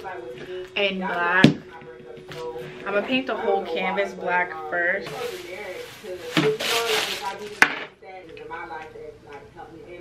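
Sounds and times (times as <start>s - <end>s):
plastic wrap crinkling and tearing: 5.1s - 7.6s.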